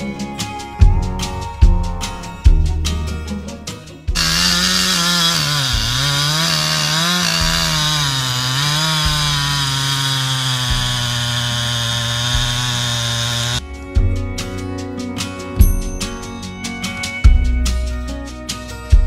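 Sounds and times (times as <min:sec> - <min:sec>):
chainsaw cutting log: 0:04.2 - 0:13.6.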